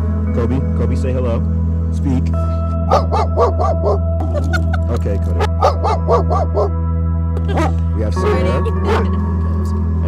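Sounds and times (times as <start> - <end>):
background music: 0.0 - 10.0
dog yipping: 2.9 - 4.6, 5.4 - 6.8, 7.5 - 7.8.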